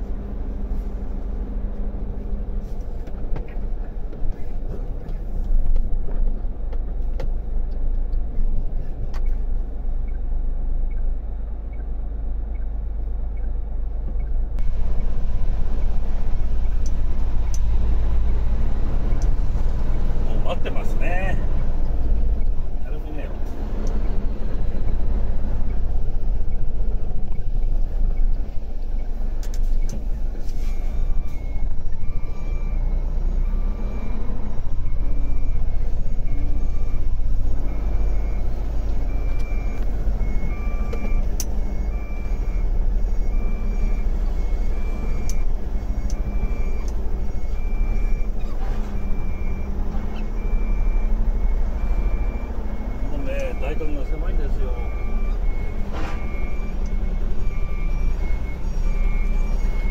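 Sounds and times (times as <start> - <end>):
diesel engine running: 0.0 - 59.9
reversing alarm beeping: 29.0 - 59.9.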